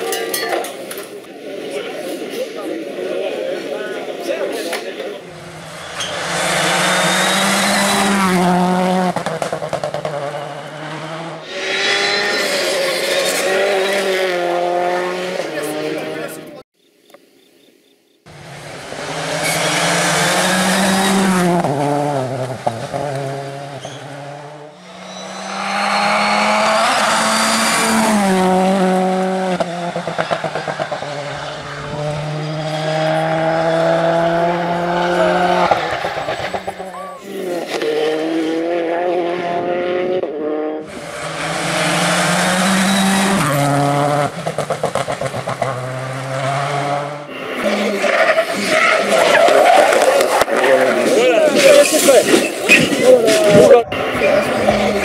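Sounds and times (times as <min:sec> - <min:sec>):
rally cars passing at speed: 0:00.9 - 0:16.6, 0:18.3 - 0:55.0.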